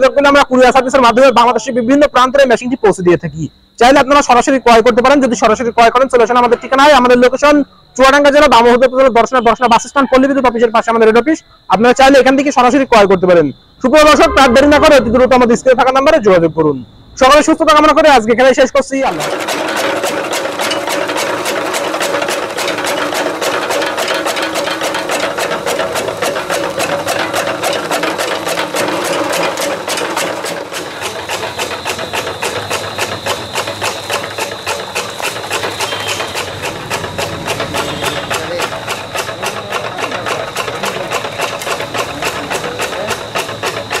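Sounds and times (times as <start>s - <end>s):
thin high whine: 13.8s - 17.8s
chaff cutter chopping fodder: 19.1s - 44.0s.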